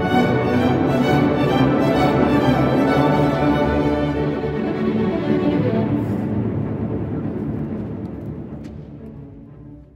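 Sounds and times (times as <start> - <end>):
symphony orchestra with bowed strings: 0.0 - 9.9.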